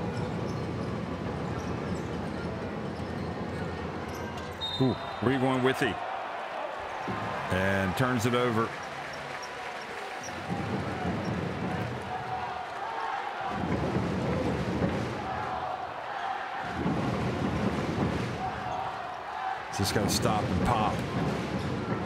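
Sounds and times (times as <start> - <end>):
arena crowd noise: 0.0 - 22.0.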